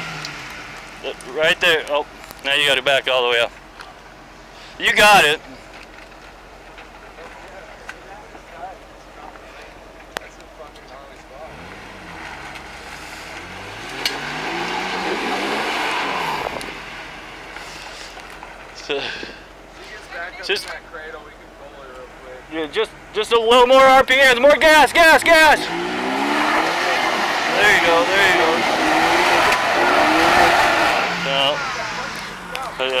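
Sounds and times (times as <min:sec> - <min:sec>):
off-road engine revving: 0:00.0 - 0:03.3, 0:10.7 - 0:19.5, 0:21.9 - 0:33.0
voices: 0:01.0 - 0:33.0
tyres churning mud: 0:11.5 - 0:16.8, 0:25.0 - 0:33.0.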